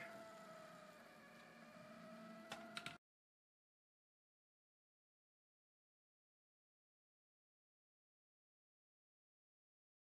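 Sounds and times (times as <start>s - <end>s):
faint high whine: 0.0s - 3.0s.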